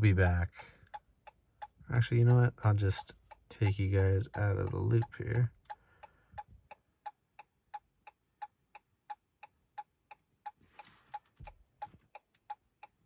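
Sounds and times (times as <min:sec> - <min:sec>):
faint rustle: 0:10.6 - 0:12.1.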